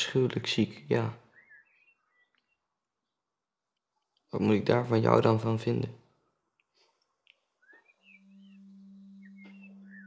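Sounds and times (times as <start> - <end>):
faint high chirps: 7.2 - 10.0.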